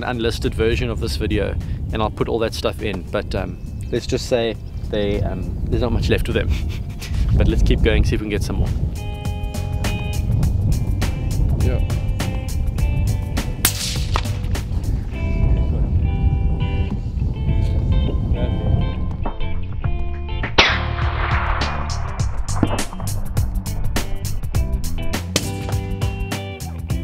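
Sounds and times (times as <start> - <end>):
background music with beat: 8.8 - 15.0, 19.8 - 27.0
rifle shot: 13.6 - 14.6, 20.6 - 23.4, 25.4 - 25.8
short sharp crack: 13.6 - 14.7, 20.5 - 24.1.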